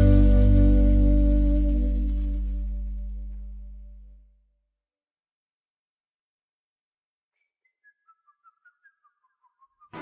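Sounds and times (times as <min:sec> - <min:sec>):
whistled notes stepping down: 0:07.4 - 0:10.0.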